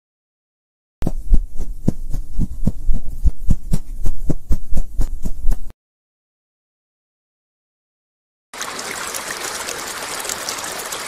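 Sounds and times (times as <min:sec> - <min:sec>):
rapid low thumps with ticks: 0:01.0 - 0:05.7.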